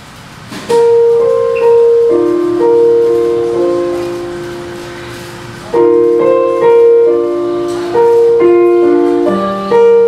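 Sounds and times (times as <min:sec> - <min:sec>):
digital piano chords: 0:00.6 - 0:10.0.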